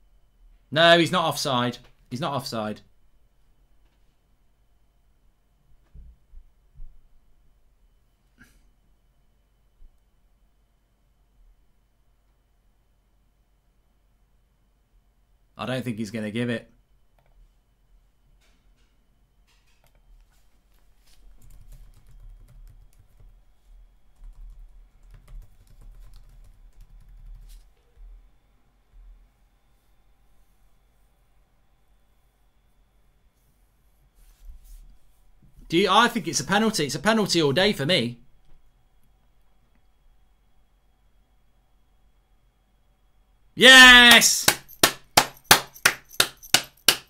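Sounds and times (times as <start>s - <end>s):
computer keyboard typing: 21.3s - 23.4s, 24.2s - 27.6s
person clapping hands: 43.9s - 47.0s.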